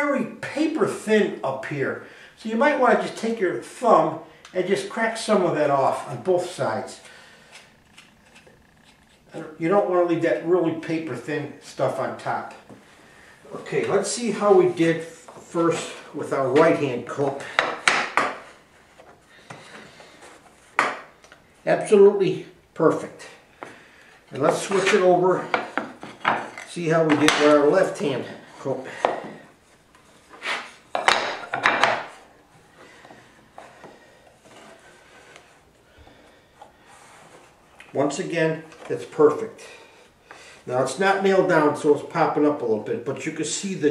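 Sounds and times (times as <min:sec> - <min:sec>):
wood-on-wood scrapes: 0:29.0 - 0:32.2, 0:32.8 - 0:35.7, 0:36.6 - 0:37.8
wood knocks: 0:30.9 - 0:32.1.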